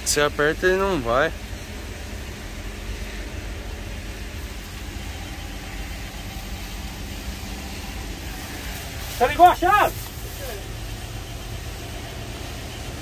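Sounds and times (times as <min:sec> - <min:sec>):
engine running steadily: 0:00.0 - 0:13.0.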